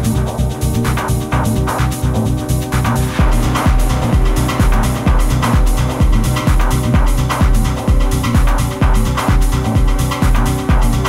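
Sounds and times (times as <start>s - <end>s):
deep kick drum: 0.0s - 11.0s
techno music: 0.0s - 11.0s.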